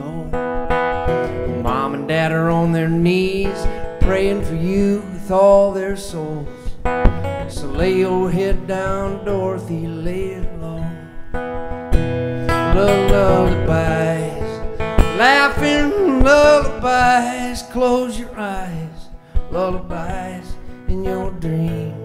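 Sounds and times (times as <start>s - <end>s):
man singing: 0.0s - 11.4s, 12.2s - 22.0s
acoustic guitar lullaby: 0.0s - 22.0s.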